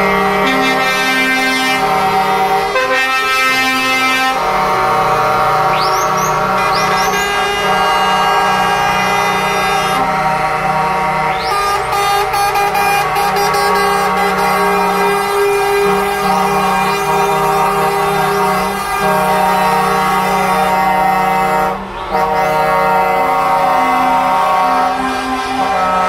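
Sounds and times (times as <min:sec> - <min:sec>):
truck air horns: 0:00.0 - 0:26.0.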